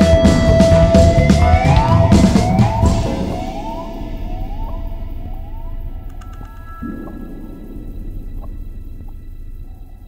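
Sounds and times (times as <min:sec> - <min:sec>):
deeper backing music: 0:00.0 - 0:10.0.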